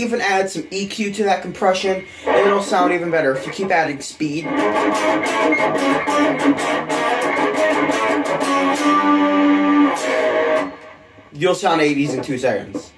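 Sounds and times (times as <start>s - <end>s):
distorted electric guitar riff: 1.5s - 12.9s.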